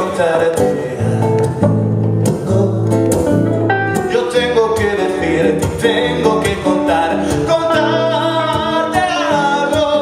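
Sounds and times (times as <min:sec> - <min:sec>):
man singing: 0:00.0 - 0:10.0
strummed acoustic guitar: 0:00.0 - 0:10.0.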